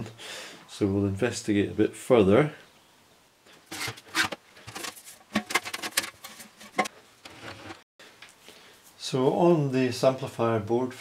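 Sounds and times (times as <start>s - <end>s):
hands handling equipment: 3.6s - 8.4s.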